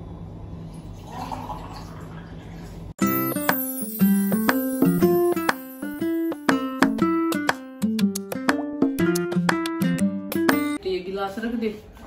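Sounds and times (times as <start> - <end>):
keyboard music: 3.0 - 10.8.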